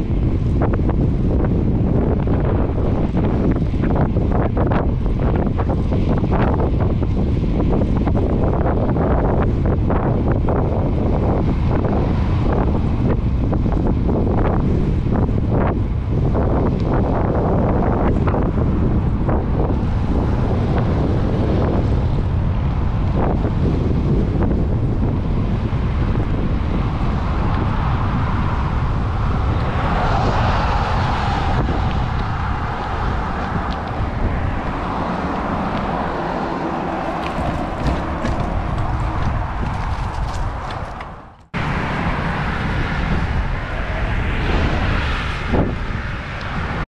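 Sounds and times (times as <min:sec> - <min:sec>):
road and traffic noise: 0:00.0 - 0:46.9
wind buffeting microphone: 0:00.0 - 0:46.9
vehicle passing: 0:08.5 - 0:46.8.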